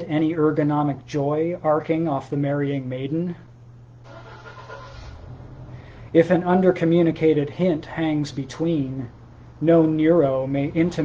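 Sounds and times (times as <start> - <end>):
steady low hum: 0.0 - 11.0
man breathing softly: 5.7 - 6.1.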